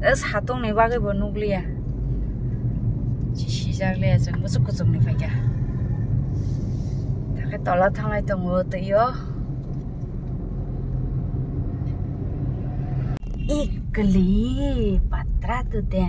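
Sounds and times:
car driving rumble inside cabin: 0.0 - 16.0.

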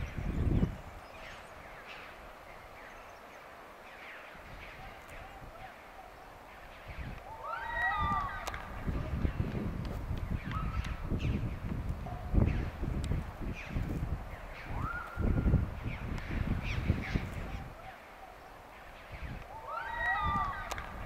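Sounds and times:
people yelling and whooping: 7.2 - 9.2, 19.4 - 21.0.

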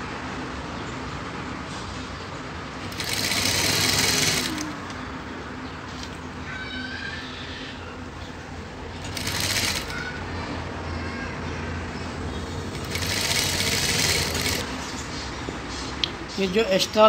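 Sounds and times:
sewing machine stitching: 2.8 - 4.8, 9.0 - 10.2, 12.7 - 14.7.

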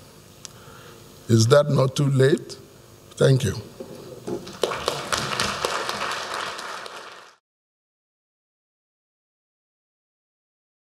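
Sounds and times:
audience applauding: 4.2 - 7.4.

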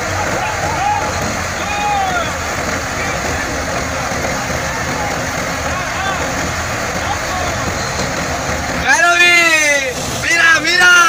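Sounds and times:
threshing machine running: 0.0 - 11.0
tractor diesel engine: 0.0 - 11.0.

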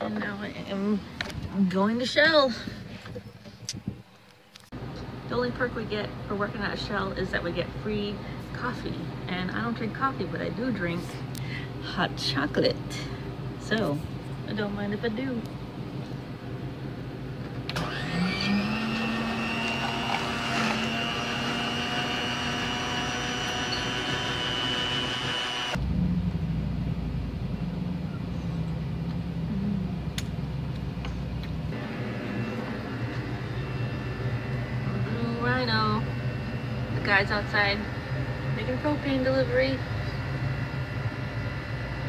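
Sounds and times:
low steady hum: 4.8 - 42.0
mixing motor whining: 17.6 - 25.8, 31.7 - 42.0.

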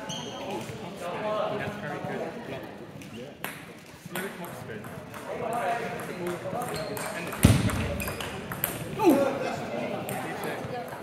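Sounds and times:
murmured voices: 8.2 - 11.0.

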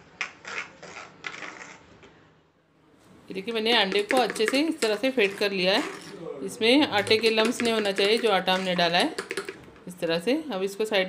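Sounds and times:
utensil whisking in plastic bowl: 3.4 - 9.7.

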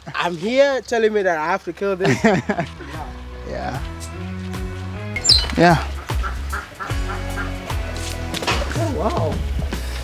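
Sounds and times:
background music: 2.0 - 10.0
poultry calling: 5.2 - 7.8.

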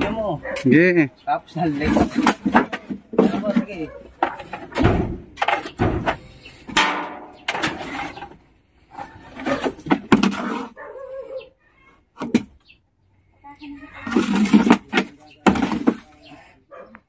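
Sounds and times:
wooden boards knocking together: 1.7 - 8.3, 9.0 - 10.7, 12.2 - 12.6, 14.1 - 16.2.

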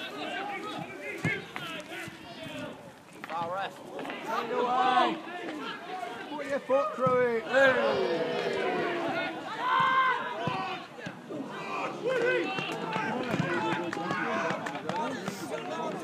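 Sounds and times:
men shouting and calling: 0.0 - 16.0.

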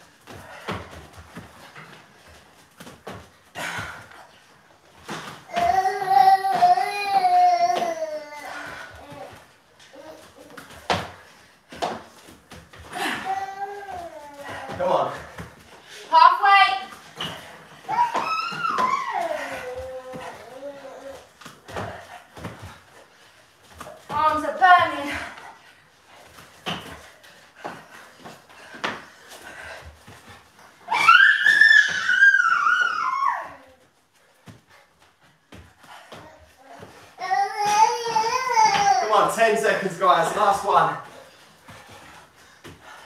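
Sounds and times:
soft thuds on exercise mats: 0.0 - 43.0.

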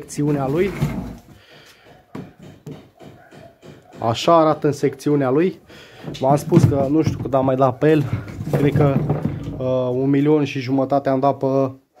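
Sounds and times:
plastic hose handling noises: 6.0 - 10.0.

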